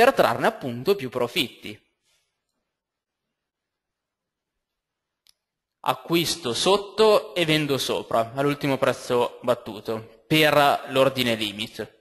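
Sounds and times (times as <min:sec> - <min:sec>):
man speaking: 0:00.0 - 0:01.9, 0:05.8 - 0:12.0.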